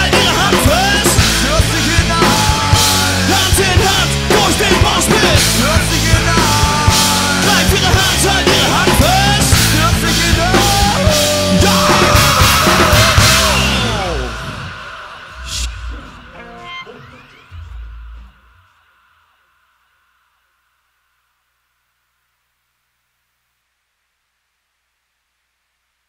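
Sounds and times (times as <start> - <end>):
rock band closing chord: 0.0 - 18.8
faint steady hiss: 17.6 - 26.0.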